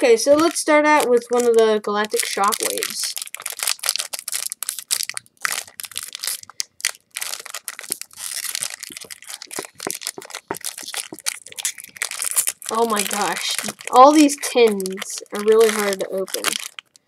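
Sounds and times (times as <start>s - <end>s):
foil wrapper crinkling: 0.0s - 17.0s.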